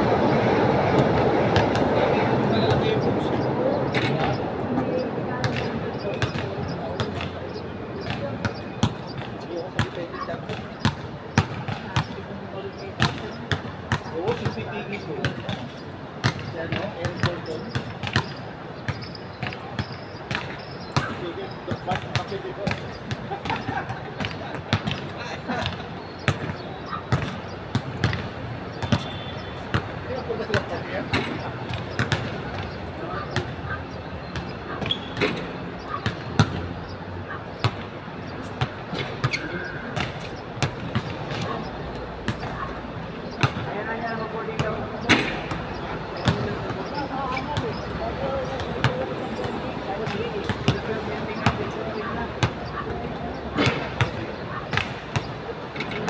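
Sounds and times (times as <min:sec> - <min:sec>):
people talking: 0:00.2 - 0:15.8, 0:16.4 - 0:17.9, 0:21.0 - 0:27.3, 0:30.0 - 0:33.5, 0:39.0 - 0:40.2, 0:41.1 - 0:42.7, 0:43.3 - 0:54.8, 0:55.5 - 0:56.0
basketballs bouncing on hard court: 0:03.8 - 0:36.7, 0:37.6 - 0:42.7, 0:43.3 - 0:55.4.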